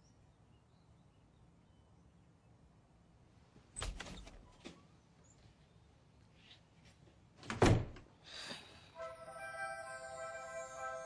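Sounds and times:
soft film music: 8.8 - 11.0.

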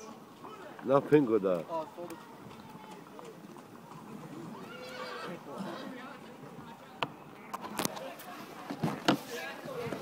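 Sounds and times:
hooves clip-clopping on asphalt: 0.0 - 10.0
horse whinnying: 4.4 - 5.9.

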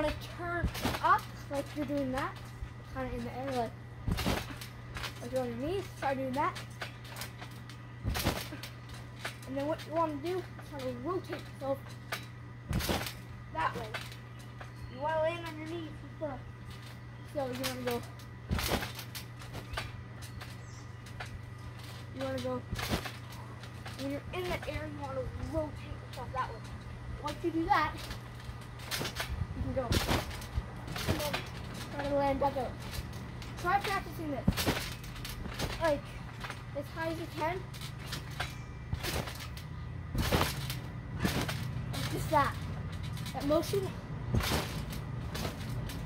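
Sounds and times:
person landing on trampoline: 0.0 - 46.0
trampoline clicks and creaks: 0.0 - 46.0.

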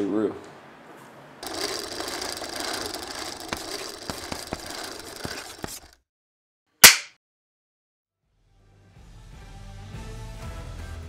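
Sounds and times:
mechanical rattle with hiss: 1.4 - 5.9.

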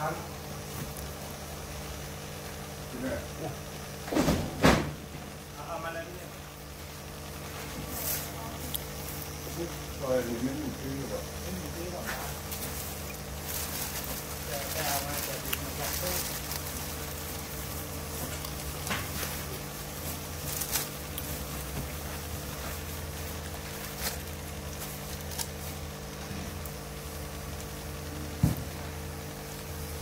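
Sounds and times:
aquarium air stone bubbling: 0.0 - 4.1, 5.0 - 30.0
tank equipment hum: 0.0 - 30.0
short loud thump: 4.1 - 5.1.

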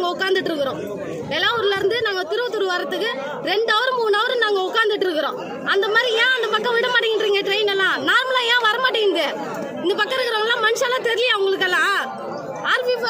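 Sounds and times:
crowd chattering: 0.0 - 13.0.

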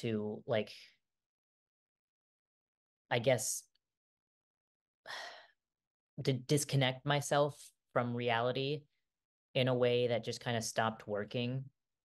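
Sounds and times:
woman speaking: 9.6 - 11.7.

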